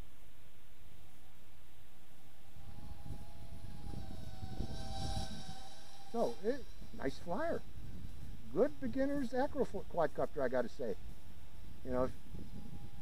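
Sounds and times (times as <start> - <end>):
quadcopter propeller whine: 1.9 - 13.0
wind rumble on microphone: 2.4 - 9.9, 10.9 - 13.0.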